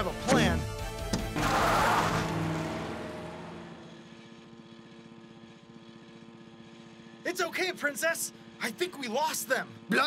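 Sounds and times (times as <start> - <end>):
small car engine running: 0.1 - 10.0.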